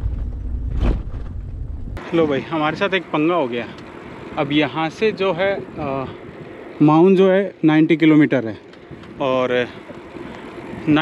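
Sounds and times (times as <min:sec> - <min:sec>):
wind buffeting microphone: 0:03.8 - 0:07.1, 0:08.8 - 0:11.0.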